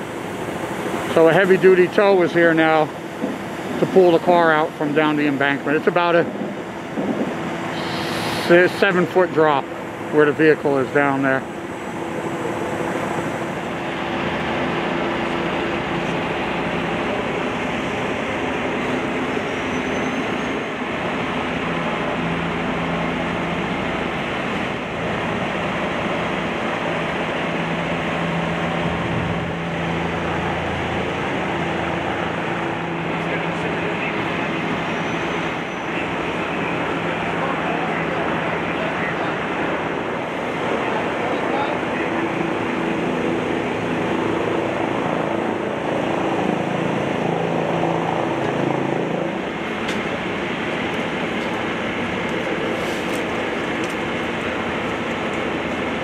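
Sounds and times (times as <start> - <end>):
highway traffic roar: 0.0 - 56.0
truck engine hum: 0.0 - 56.0.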